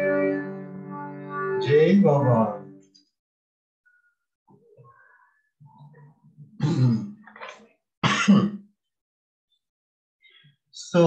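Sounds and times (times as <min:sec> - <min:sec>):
man clearing throat: 0:06.6 - 0:07.2, 0:08.0 - 0:08.7.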